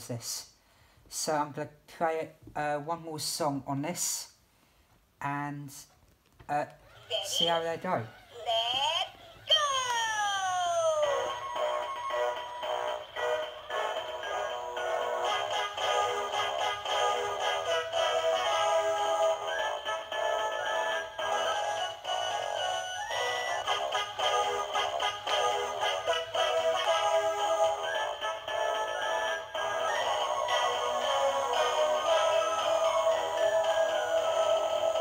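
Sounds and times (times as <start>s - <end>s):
toy playing electronic carol: 6.8s - 35.0s.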